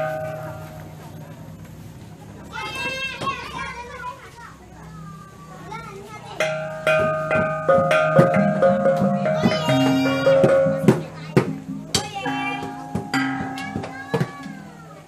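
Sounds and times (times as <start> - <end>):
metal percussion and drumbeats: 0.0 - 1.1, 6.4 - 15.0
children's voices: 2.2 - 15.0.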